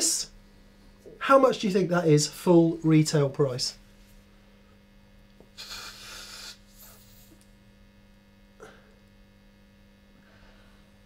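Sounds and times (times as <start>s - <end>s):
electrical mains hum: 0.0s - 11.0s
breathy noise: 5.5s - 7.4s.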